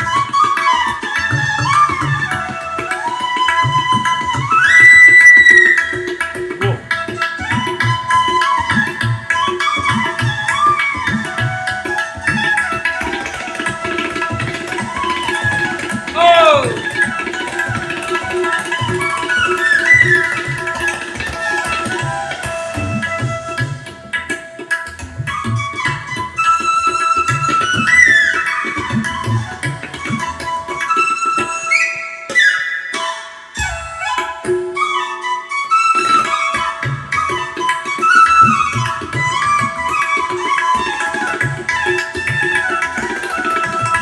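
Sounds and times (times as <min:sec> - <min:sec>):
bamboo flute melody: 0:00.0 - 0:44.0
tabla strokes: 0:00.0 - 0:44.0.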